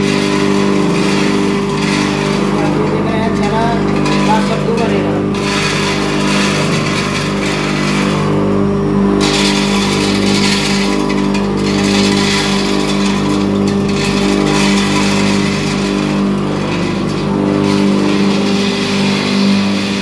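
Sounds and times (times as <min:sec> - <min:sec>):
grinding machine motor hum: 0:00.0 - 0:20.0
hissing grinding noise: 0:00.0 - 0:20.0.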